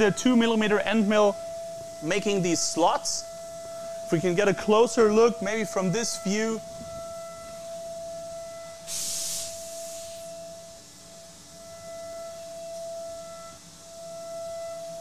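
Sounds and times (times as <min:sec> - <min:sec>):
milling spindle high-pitched tone: 0:00.0 - 0:08.8, 0:11.6 - 0:15.0
short loud hiss: 0:08.8 - 0:10.3.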